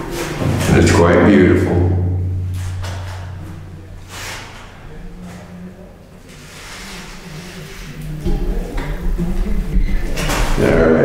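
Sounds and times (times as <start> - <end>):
low echo hum in stone chamber: 0.0 - 6.2.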